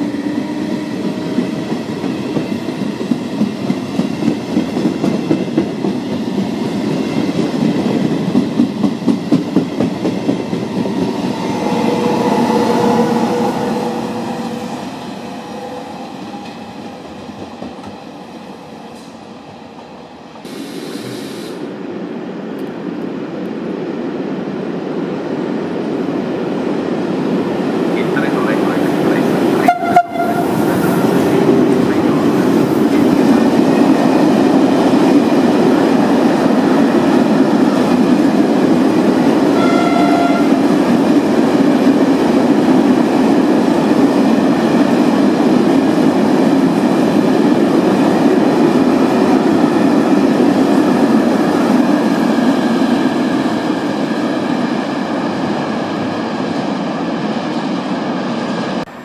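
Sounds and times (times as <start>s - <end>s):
freight train rolling over rails: 0.0s - 59.0s
passenger train rolling: 0.0s - 59.0s
train horn notes: 11.5s - 14.9s, 29.6s - 31.4s, 39.5s - 40.8s.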